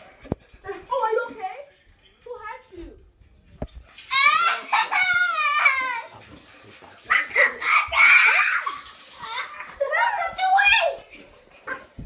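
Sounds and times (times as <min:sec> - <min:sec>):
children yelping and shrieking: 0:04.1 - 0:06.1, 0:07.1 - 0:09.7.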